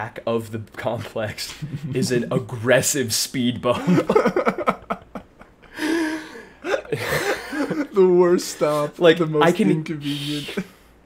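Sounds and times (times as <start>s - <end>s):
men laughing: 1.5s - 2.6s, 3.7s - 8.3s.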